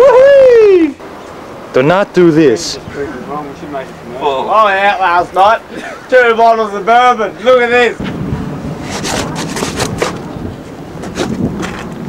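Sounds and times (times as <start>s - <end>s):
wind noise on microphone: 6.9s - 12.0s
microphone handling rustles: 8.0s - 12.0s.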